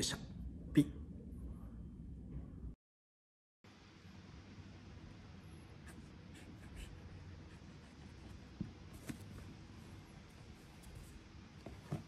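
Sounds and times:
marker scratching on cardboard: 5.8 - 8.4.

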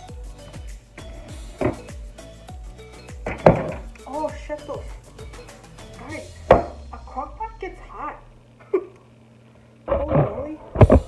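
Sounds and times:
music with drum beat: 0.0 - 7.7
crock pot knocks: 3.2 - 3.9, 6.4 - 7.1.

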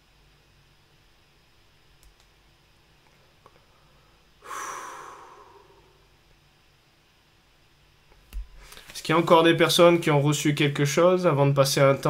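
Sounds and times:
small clicks: 2.0 - 2.3
sharp exhale into microphone: 3.9 - 6.0.

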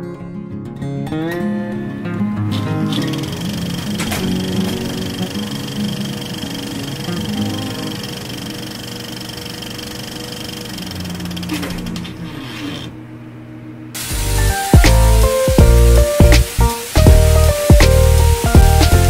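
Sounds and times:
intro music: 2.0 - 9.6, 14.0 - 19.0
film projector rattle: 2.9 - 12.0.

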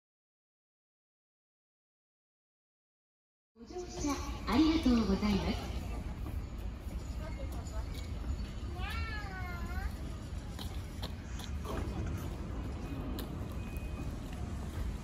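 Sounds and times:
electric train rumbling: 3.6 - 15.0.

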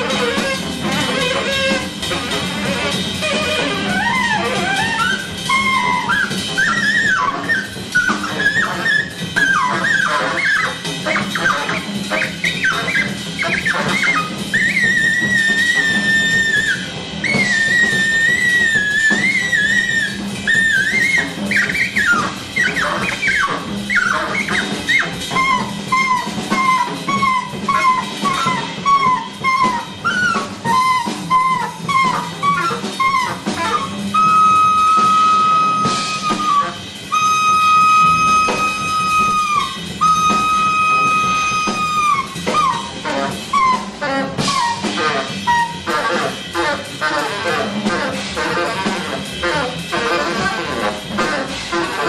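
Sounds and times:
upright bass: 0.0 - 10.0, 33.4 - 52.0
alto saxophone runs and squeals: 0.0 - 52.0
drum kit: 0.0 - 52.0.

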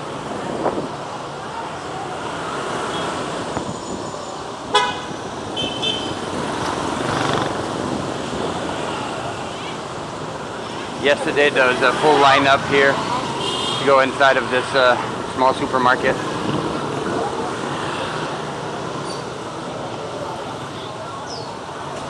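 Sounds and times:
cars and motorbikes passing: 0.0 - 22.0
vehicle horn toot: 4.7 - 6.2, 13.4 - 13.9.

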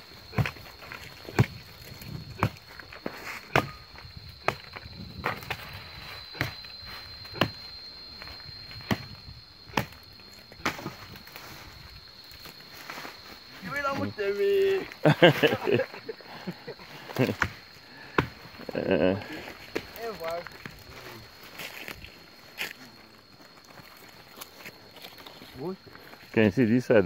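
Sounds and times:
footsteps crunching through twigs: 9.8 - 15.6, 18.4 - 26.4.

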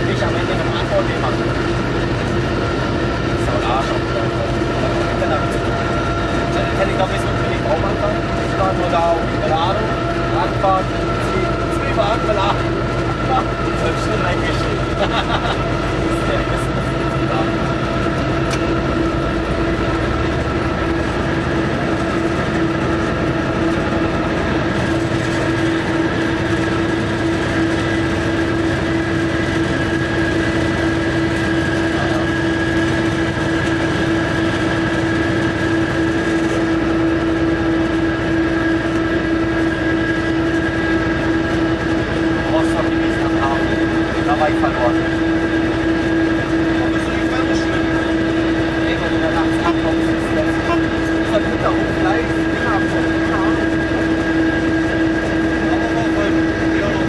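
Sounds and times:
locomotive engine drone: 0.0 - 57.0
train rumbling on rails: 0.0 - 57.0
high whining tones: 15.6 - 57.0.

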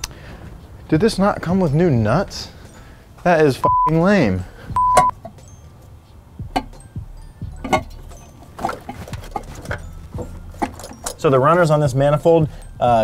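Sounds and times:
steady test tone: 3.6 - 5.2
metal parts clicking and knocking: 7.6 - 11.7.

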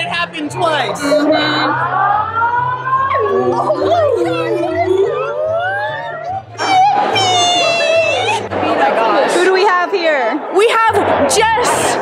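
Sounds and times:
voices making wordless cries: 0.9 - 8.5.

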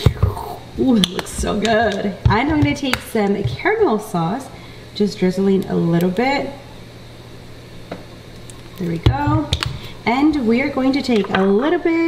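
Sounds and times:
woman's voice: 0.0 - 6.7, 8.8 - 12.0
steady low hum: 0.0 - 12.0.

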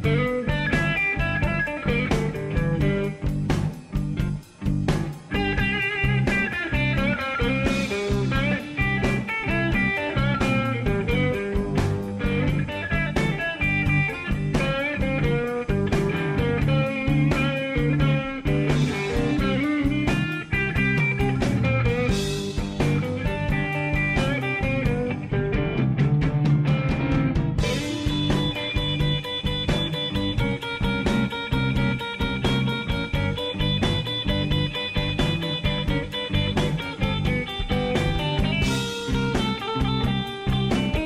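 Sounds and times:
electric blues guitar music: 0.0 - 41.0.

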